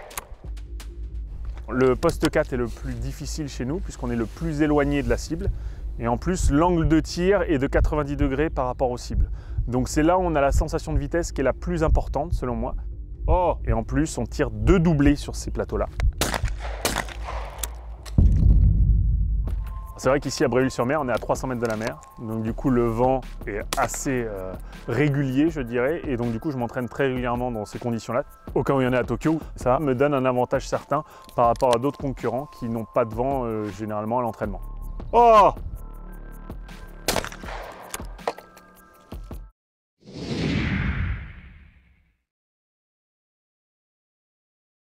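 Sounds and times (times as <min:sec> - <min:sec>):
background music: 0:00.0 - 0:39.5
shotgun shots: 0:16.2 - 0:18.2, 0:37.1 - 0:38.3.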